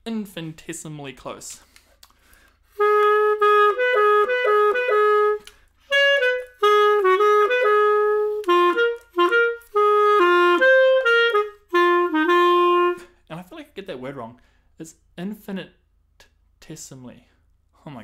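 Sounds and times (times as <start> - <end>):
solo clarinet jazz: 2.7 - 13.2.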